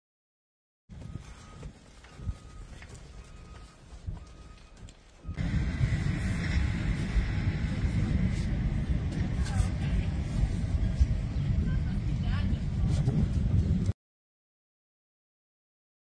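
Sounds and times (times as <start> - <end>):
wind buffeting microphone: 0.9 - 14.0.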